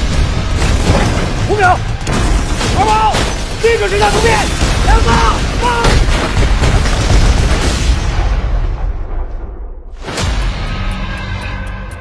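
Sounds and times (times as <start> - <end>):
heavy explosion with rumbling tail: 0.0 - 2.8, 4.5 - 10.1.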